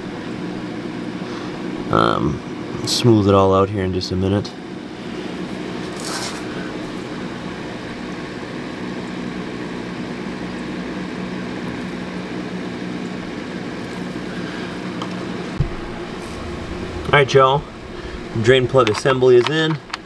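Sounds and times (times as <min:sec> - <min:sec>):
low machine hum: 0:00.0 - 0:20.0.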